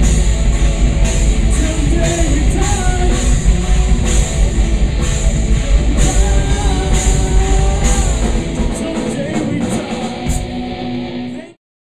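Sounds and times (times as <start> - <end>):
live rock band playing: 0.0 - 11.6.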